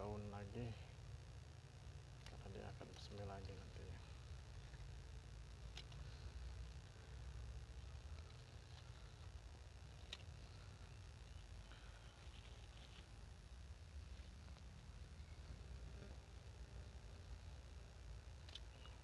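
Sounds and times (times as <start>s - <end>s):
faint low rumble: 0.0s - 19.0s.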